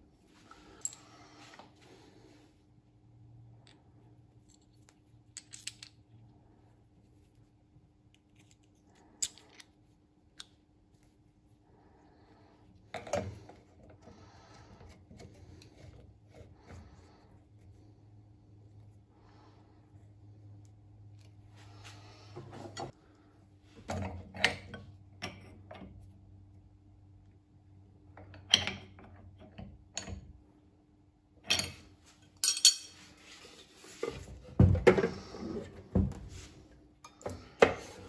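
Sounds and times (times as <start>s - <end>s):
spanners clinking on metal: 32.4s - 33.0s.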